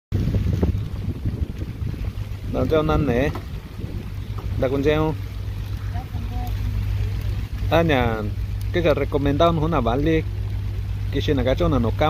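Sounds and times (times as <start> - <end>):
wind buffeting microphone: 0.1 - 12.0.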